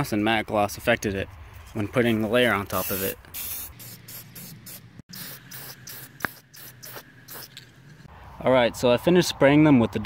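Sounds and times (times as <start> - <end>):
aerosol can spraying: 2.7 - 7.7.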